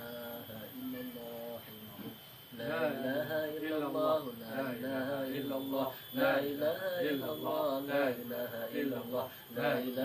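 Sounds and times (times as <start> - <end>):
man chanting a prayer: 0.0 - 10.0.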